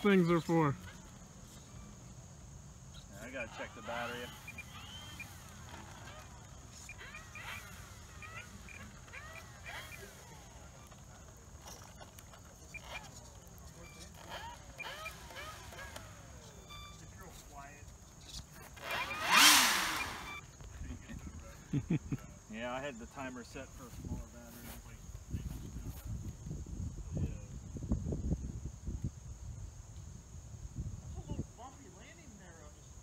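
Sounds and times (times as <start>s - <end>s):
model plane motor and propeller: 0.0s - 21.6s.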